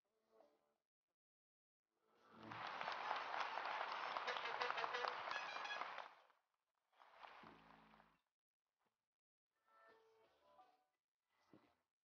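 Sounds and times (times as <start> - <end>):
audience applauding: 2.4 - 6.2.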